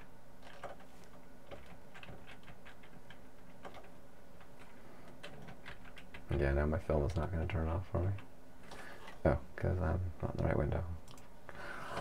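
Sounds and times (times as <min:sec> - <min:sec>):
computer keys clicking: 0:00.0 - 0:06.4
faint steady hum: 0:00.0 - 0:12.0.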